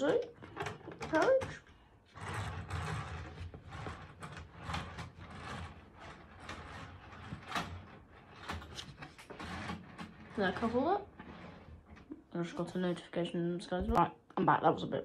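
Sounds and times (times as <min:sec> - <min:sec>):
plastic clicks and rustling: 0:00.0 - 0:10.9.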